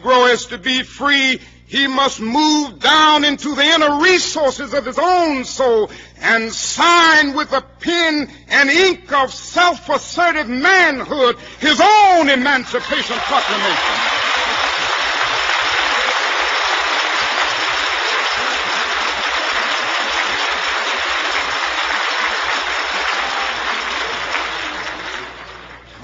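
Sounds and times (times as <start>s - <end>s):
audience applauding: 12.7s - 26.0s.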